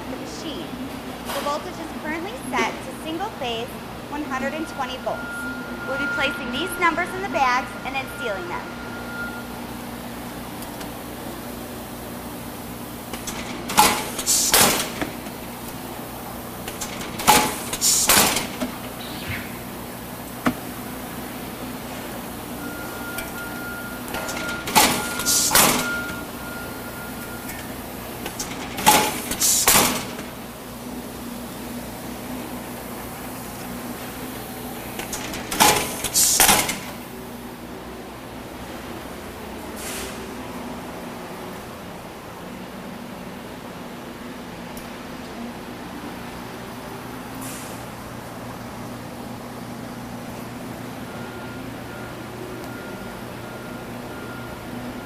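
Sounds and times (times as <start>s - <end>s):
steady low hum: 0.0s - 25.3s
bag sealer mechanical bursts: 13.1s - 15.4s, 16.6s - 18.9s, 28.2s - 30.4s, 34.9s - 37.0s.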